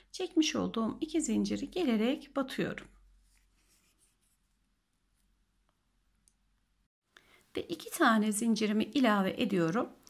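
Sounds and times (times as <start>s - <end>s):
yarn and crochet hook rustling: 2.9s - 5.8s.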